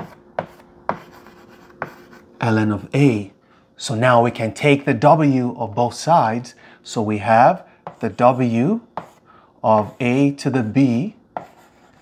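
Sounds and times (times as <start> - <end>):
chalk tapping on blackboard: 0.0 - 2.2, 7.8 - 8.2, 9.0 - 9.2, 9.8 - 12.0
chalk scratching: 0.0 - 2.3, 9.0 - 9.2, 9.8 - 12.0.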